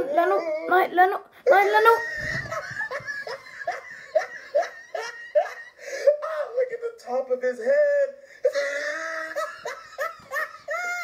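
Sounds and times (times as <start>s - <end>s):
boy laughing: 0.0s - 6.2s, 8.4s - 11.0s.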